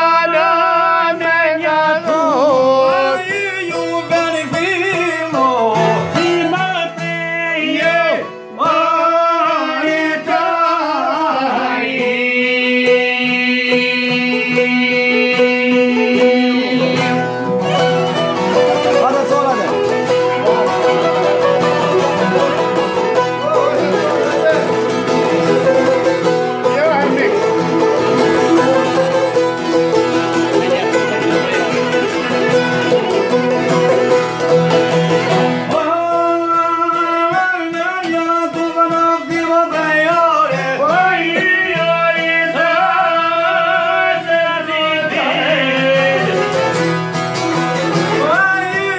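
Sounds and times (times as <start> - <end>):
man singing ornamented: 0.0 - 17.6, 35.7 - 46.8
guitar: 0.0 - 48.9
plucked lutes strummed: 0.0 - 48.9
violin: 11.7 - 35.8.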